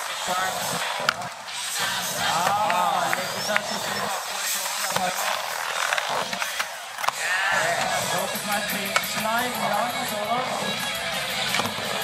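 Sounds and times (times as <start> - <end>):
crowd chatter: 0.0 - 12.0
skateboard wheels rolling: 0.0 - 12.0.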